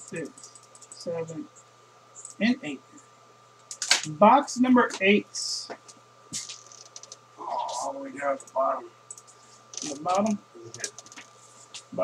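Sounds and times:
man talking: 0.1 - 0.4, 1.0 - 1.5, 2.4 - 3.0, 4.0 - 5.8, 7.4 - 8.9, 9.8 - 10.9.

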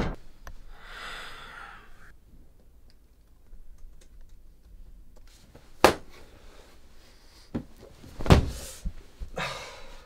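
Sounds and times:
dull thumps on a bed: 7.5 - 9.3.

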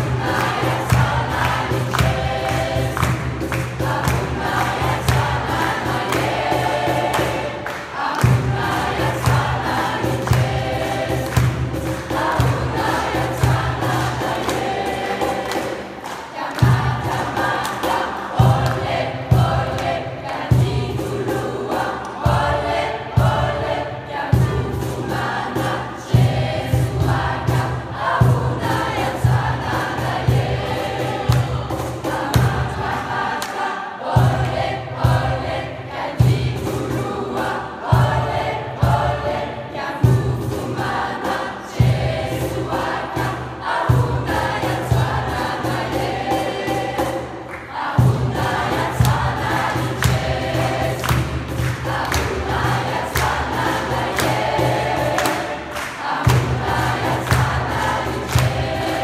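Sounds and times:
steady beat: 0.0 - 23.8, 38.0 - 59.0
youth choir singing: 0.0 - 59.0.

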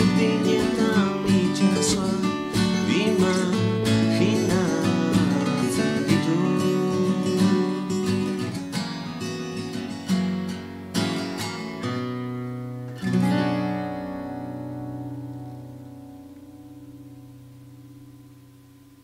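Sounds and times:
acoustic guitars strumming: 0.0 - 19.0.

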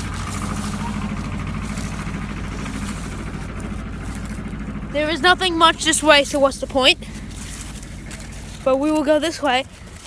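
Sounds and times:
corn leaves rustling: 0.0 - 10.0
low motor-like hum: 0.0 - 10.0.

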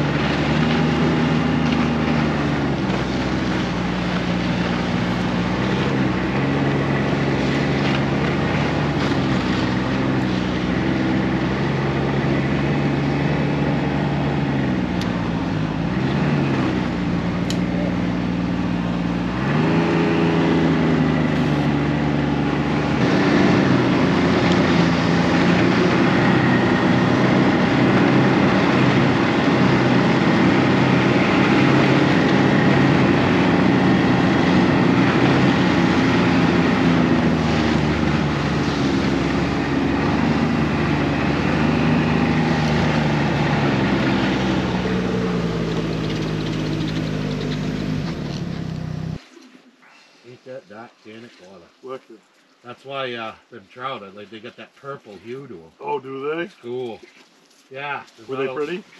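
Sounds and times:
snowmobile engine running: 0.0 - 49.2.

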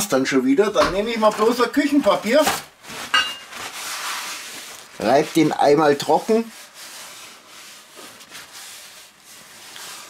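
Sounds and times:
kitchen paper rustling: 0.0 - 10.0.

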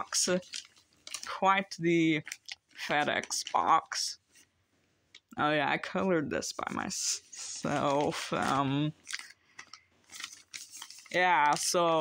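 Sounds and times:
plastic mailer crinkling: 0.0 - 3.8, 7.6 - 12.0.

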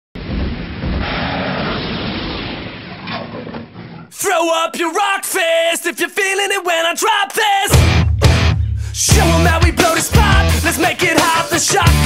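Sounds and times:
loud dull rumbling: 0.2 - 4.0.

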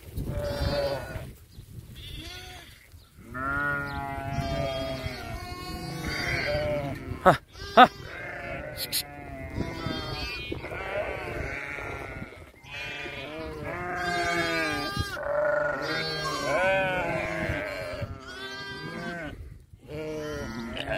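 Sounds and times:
sheep and lambs bleating: 0.3 - 1.3, 2.0 - 20.9.

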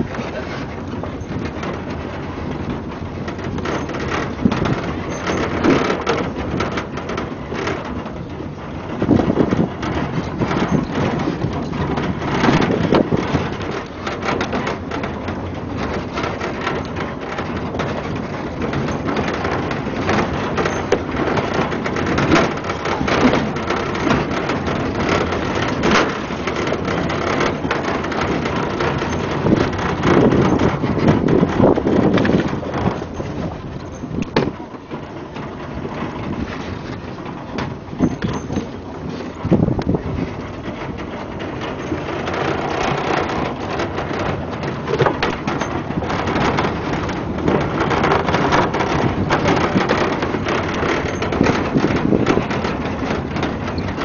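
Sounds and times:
knocks and rattles: 0.0 - 54.0
wind buffeting microphone: 0.0 - 54.0.

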